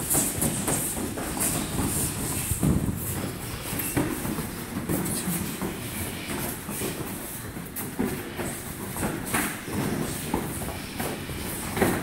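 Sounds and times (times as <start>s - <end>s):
bare feet stepping on foam mats: 0.0s - 12.0s.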